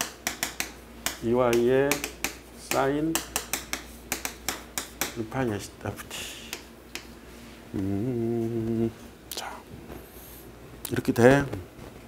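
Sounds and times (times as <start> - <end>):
chalk tapping on chalkboard: 0.0 - 5.2, 6.4 - 7.2.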